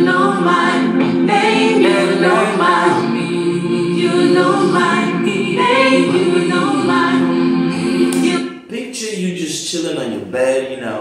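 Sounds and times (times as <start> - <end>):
choir singing a cappella: 0.0 - 8.7.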